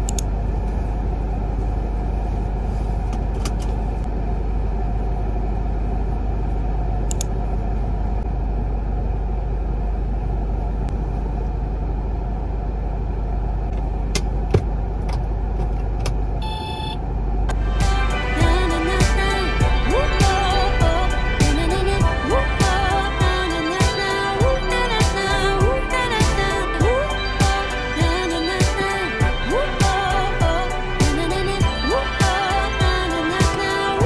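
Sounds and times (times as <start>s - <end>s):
car engine idling: 0.0s - 34.0s.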